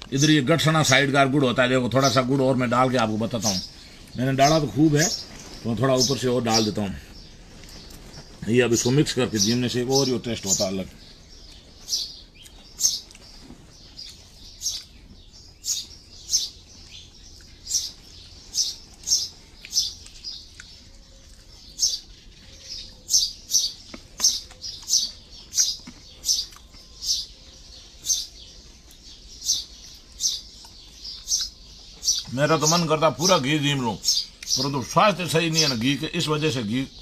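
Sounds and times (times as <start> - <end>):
small bird chirping: 0.0 - 37.0.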